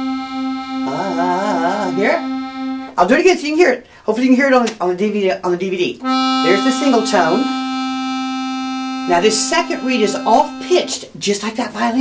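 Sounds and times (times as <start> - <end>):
accordion holding a note: 0.0 - 3.0, 6.0 - 11.1
wavering voice: 0.7 - 2.9, 6.4 - 11.1.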